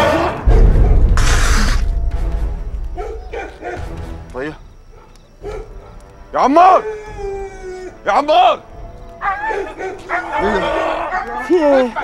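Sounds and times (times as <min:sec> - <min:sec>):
dog barking: 0:02.9 - 0:04.0, 0:04.9 - 0:06.0, 0:09.2 - 0:12.0
people's voices: 0:06.4 - 0:12.0.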